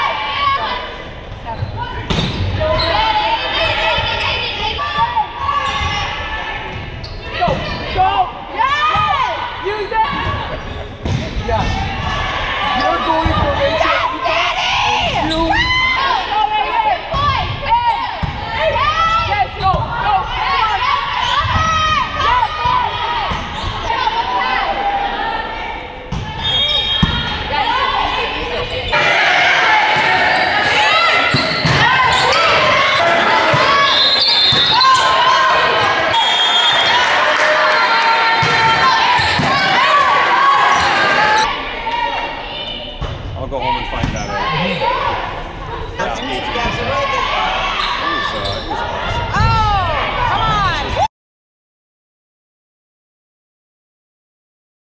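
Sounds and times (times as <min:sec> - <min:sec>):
volleyball hits: 0:10.1 - 0:13.8, 0:17.1 - 0:20.2, 0:26.1 - 0:27.6, 0:29.0 - 0:41.5
players shouting: 0:11.4 - 0:43.0, 0:43.6 - 0:51.1.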